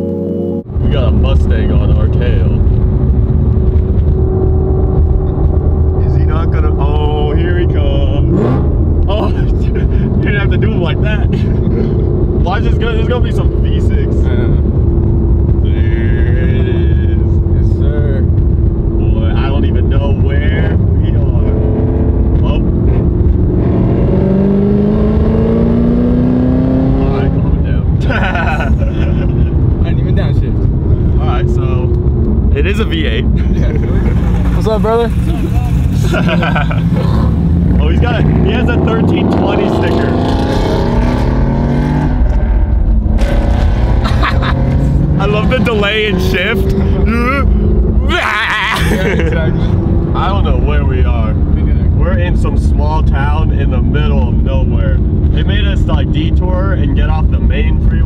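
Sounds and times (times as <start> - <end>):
car engine droning: 0.0 - 58.0.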